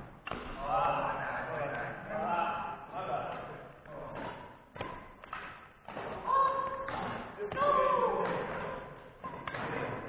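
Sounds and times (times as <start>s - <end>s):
racket hitting shuttlecock: 0.2s - 0.6s, 4.1s - 10.0s.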